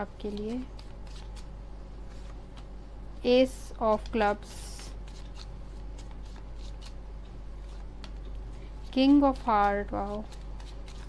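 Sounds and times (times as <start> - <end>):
low steady hum: 0.0 - 11.0
playing cards being shuffled: 0.2 - 2.7, 3.8 - 7.0, 8.8 - 11.0.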